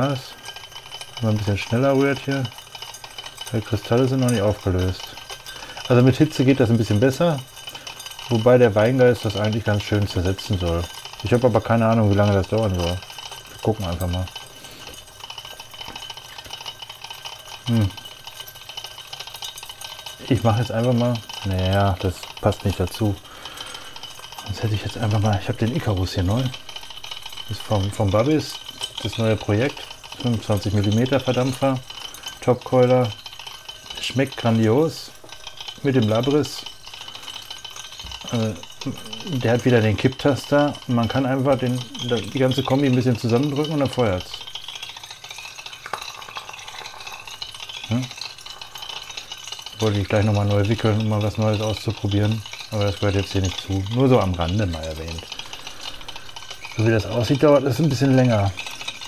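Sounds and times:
stir bar rattling against glass: 0.0s - 59.0s.

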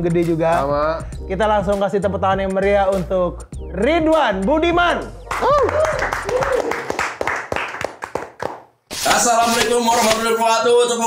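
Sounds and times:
people clapping: 5.3s - 8.8s.

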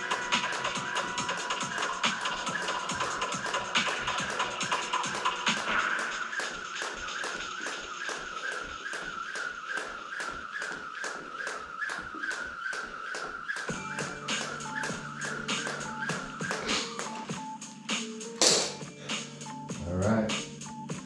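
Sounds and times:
background music with bass line: 0.0s - 7.5s, 13.7s - 21.0s
jump rope tapping floor mat: 0.4s - 17.4s, 18.4s - 18.8s.

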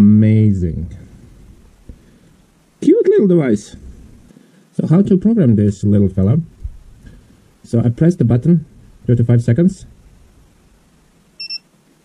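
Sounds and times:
short high beep: 11.4s - 11.6s.

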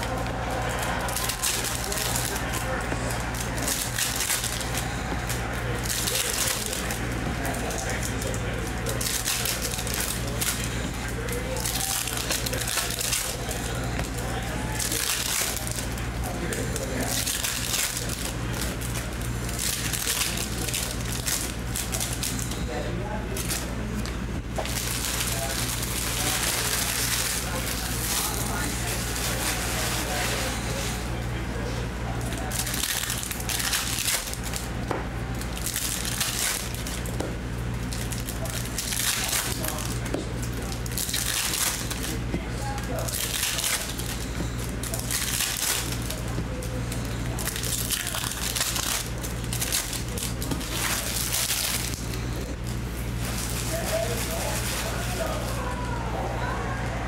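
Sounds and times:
foil wrappers crinkling: 0.0s - 56.0s
low electrical hum: 0.0s - 57.0s.

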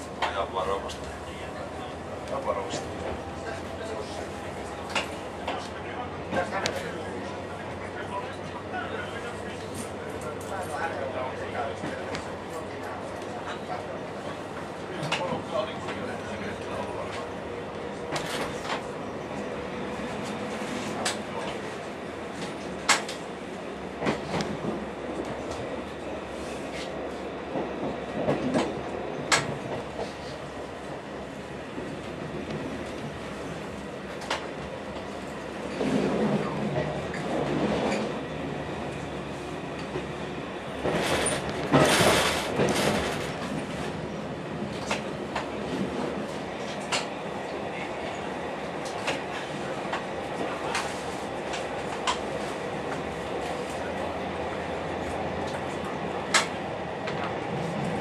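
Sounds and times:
diesel railcar running: 0.0s - 58.0s
train clattering over switches: 22.4s - 23.2s, 28.2s - 30.1s, 46.6s - 47.1s, 56.3s - 57.3s.

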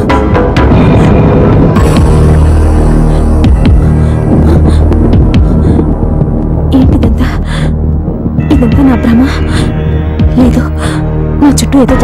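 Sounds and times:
low suspense soundtrack drone: 0.0s - 12.0s.

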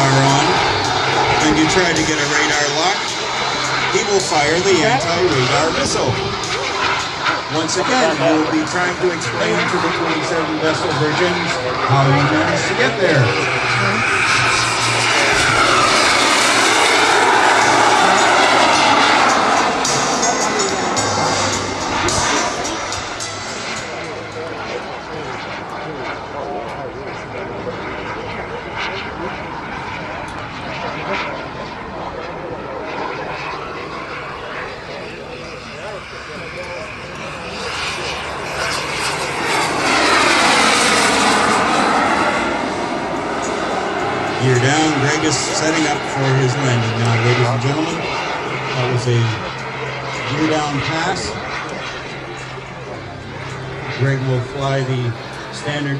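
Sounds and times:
model jet turbine whine flying past: 0.0s - 55.9s.

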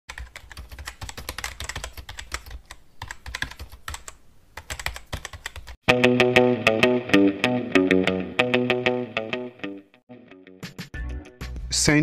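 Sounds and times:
computer keyboard typing: 0.1s - 5.8s.

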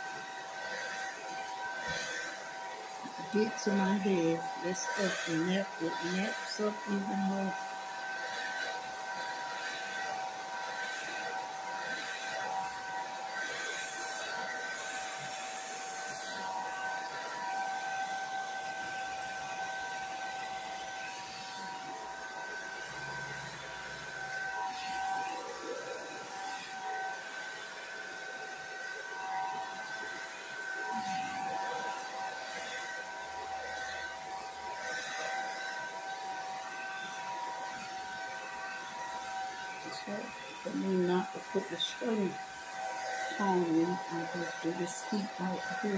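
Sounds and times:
hair dryer running: 0.0s - 45.9s.

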